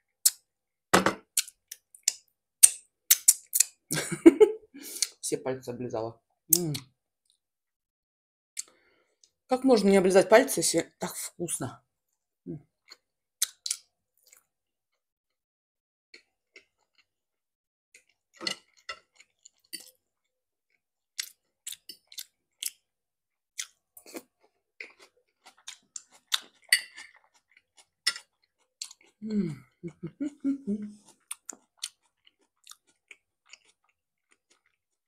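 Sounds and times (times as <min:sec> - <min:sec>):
chewing and lip smacking: 0:23.6 - 0:29.2, 0:31.0 - 0:34.9.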